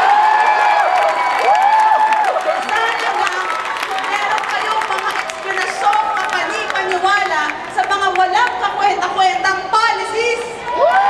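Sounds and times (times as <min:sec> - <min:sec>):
crowd cheering and clapping: 0:00.0 - 0:08.8, 0:10.4 - 0:11.0.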